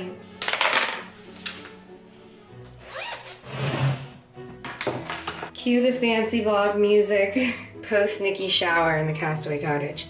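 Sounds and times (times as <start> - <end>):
bag zipper being pulled: 2.8 - 4.1.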